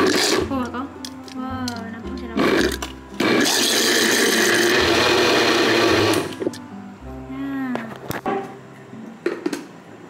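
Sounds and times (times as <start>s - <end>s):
electric blender running: 0.0s - 0.5s, 2.4s - 6.4s.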